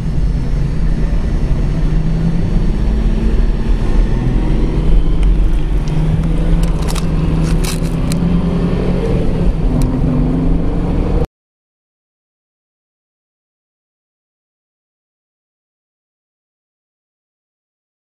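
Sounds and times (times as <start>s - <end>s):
car engine accelerating: 0.0s - 11.3s
road noise inside car: 0.0s - 11.3s
sharp clicks: 5.2s - 8.2s.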